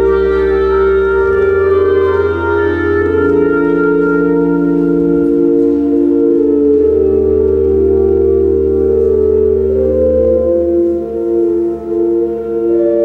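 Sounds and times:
deep organ pedal bass: 0.0 - 13.0
organ playing held chords: 0.0 - 13.0.

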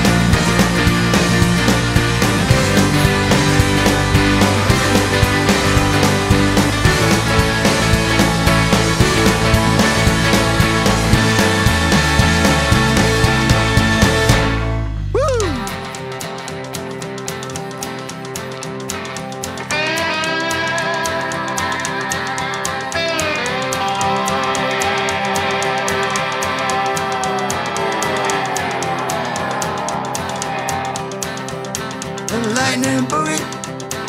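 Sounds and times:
rock band with steady beat: 0.0 - 14.6, 15.2 - 34.0
electric guitar lead with bends: 0.0 - 34.0.

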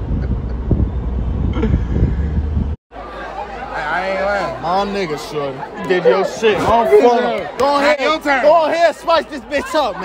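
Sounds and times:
wind buffeting microphone: 0.0 - 2.8.

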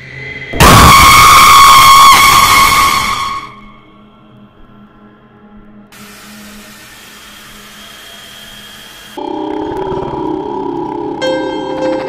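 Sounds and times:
harsh jump-scare stinger: 0.5 - 3.5
steady high tone: 7.4 - 12.0.

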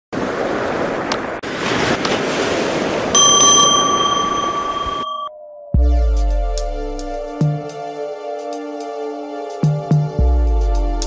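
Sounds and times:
surf: 0.1 - 5.2
wind: 0.1 - 5.2
notification bell ding: 3.2 - 5.5.

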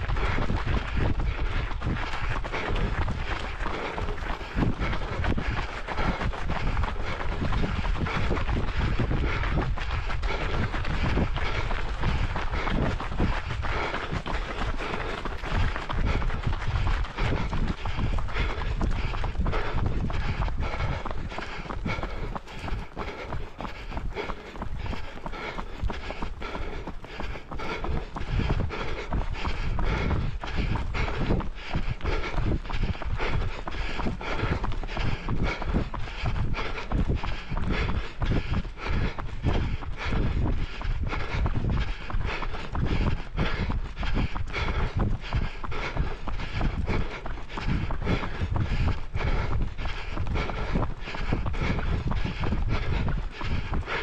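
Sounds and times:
running footsteps on a path: 0.0 - 54.0
steady low rumble: 0.0 - 54.0.

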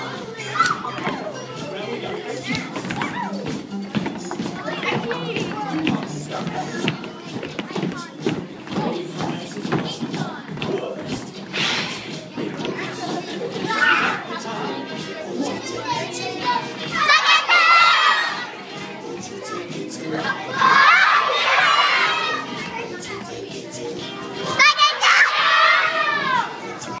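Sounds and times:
background music: 0.0 - 27.0
children chattering: 0.0 - 27.0.

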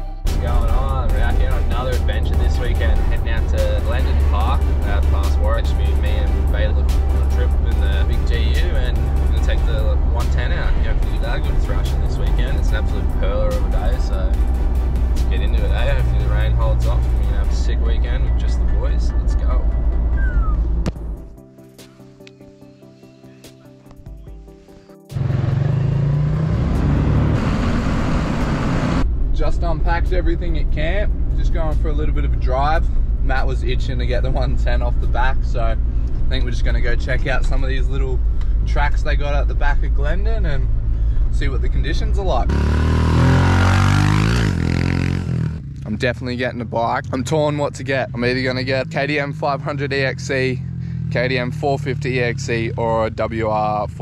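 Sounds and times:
car road and engine rumble: 0.0 - 21.4, 25.1 - 54.0
background music: 0.0 - 45.6
dirt bike engine revving: 25.1 - 29.0, 42.5 - 45.8.

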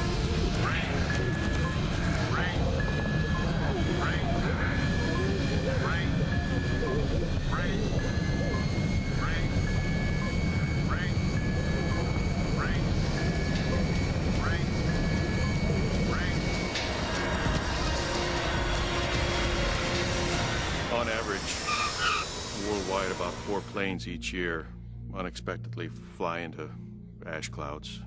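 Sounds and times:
aircraft cabin rumble: 0.0 - 18.9
electronic warning alarm: 0.0 - 23.8.

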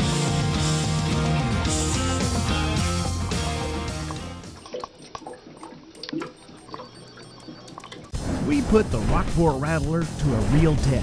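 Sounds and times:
rock music: 0.0 - 4.6
water dripping and gurgling: 2.2 - 8.2.

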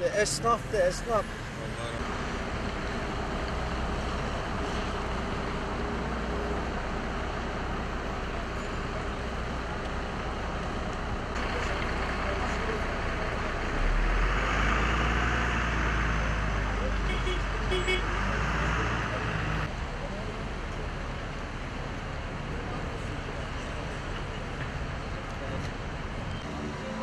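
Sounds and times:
street traffic noise: 0.0 - 27.0
vehicle rumble and tyre hiss: 0.0 - 27.0.

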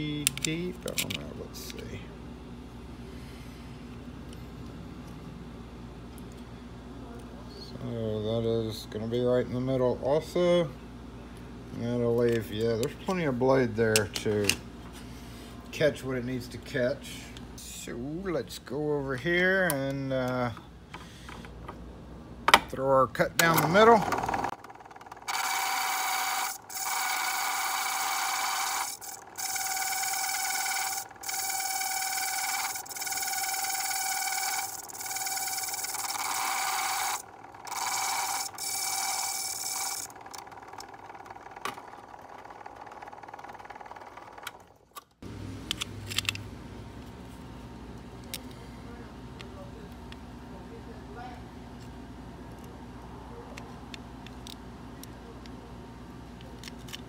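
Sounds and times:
key-cutting machine cutting: 23.4 - 44.6.

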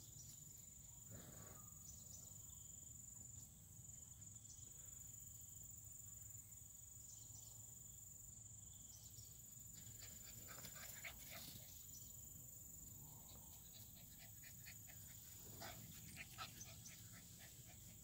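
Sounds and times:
insects buzzing: 1.8 - 18.0
puppy panting: 13.6 - 18.0.

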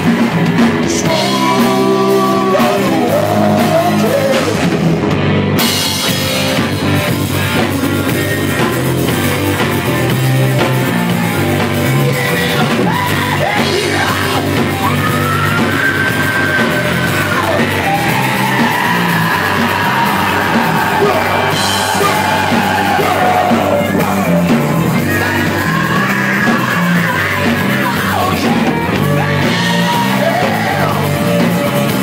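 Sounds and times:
bass guitar: 0.0 - 32.0
drum kit: 0.0 - 32.0
electric guitar: 0.0 - 32.0
person yelling: 12.8 - 24.4.

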